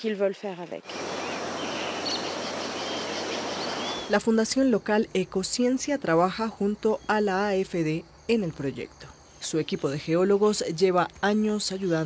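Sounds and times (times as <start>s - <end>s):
rainforest hiss: 0.9s - 6.6s
faint bird whistles: 1.2s - 4.2s.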